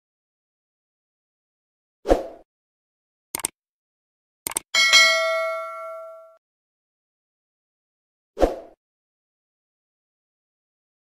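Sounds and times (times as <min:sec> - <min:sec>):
notification bell ding: 0:04.8 - 0:06.4.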